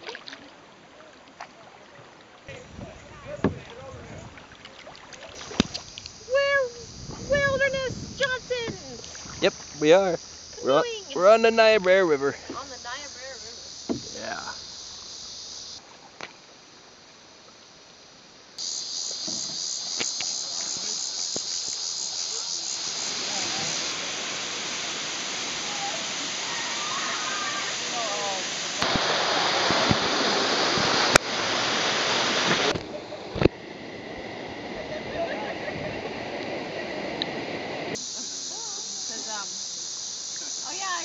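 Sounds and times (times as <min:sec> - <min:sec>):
waterfall rushing: 0:02.5 - 0:15.8, 0:19.1 - 0:38.0
insects buzzing: 0:02.5 - 0:35.5, 0:37.3 - 0:41.0.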